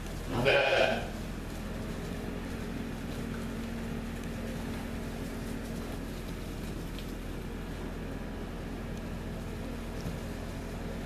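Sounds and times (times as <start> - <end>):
steady low hum: 0.0 - 11.0
lamb bleating: 0.3 - 1.2.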